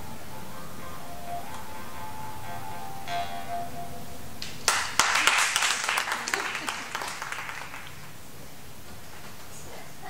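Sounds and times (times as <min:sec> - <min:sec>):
plucked string instrument: 0:00.0 - 0:04.6
audience applause: 0:04.4 - 0:08.2.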